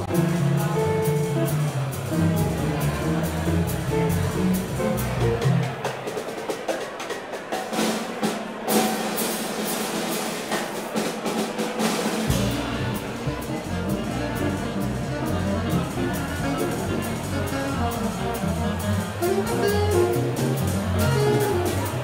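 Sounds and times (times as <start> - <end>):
trombone: 0.0 - 5.8, 12.2 - 22.0
upright bass walking: 0.0 - 5.8, 12.3 - 22.0
drum kit playing: 0.0 - 22.0
clarinet: 12.3 - 22.0
saxophone: 12.3 - 22.0.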